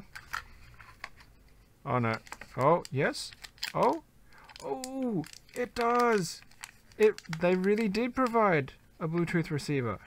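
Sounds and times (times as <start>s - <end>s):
light clicks and rustles of handling: 0.0s - 9.6s.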